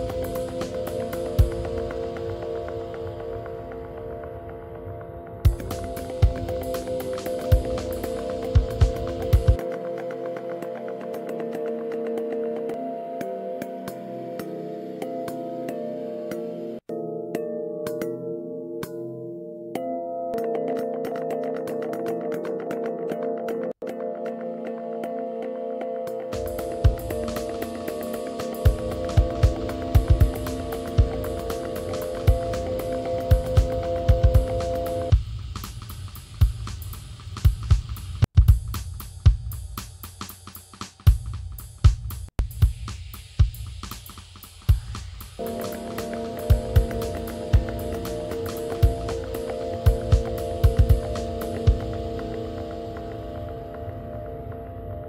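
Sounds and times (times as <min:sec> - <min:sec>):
percussive drum hits: 0:28.5 - 0:40.0, 0:41.1 - 0:52.3.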